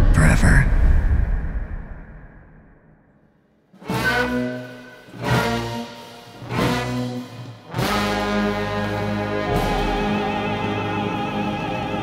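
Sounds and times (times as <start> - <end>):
brass chords: 3.7 - 12.0.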